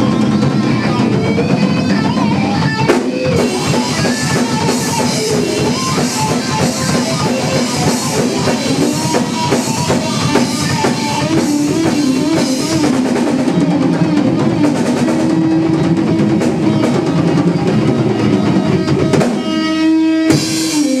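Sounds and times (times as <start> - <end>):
drum and cymbal hit: 0.0 - 17.7, 20.3 - 21.0
live rock band playing: 0.0 - 21.0.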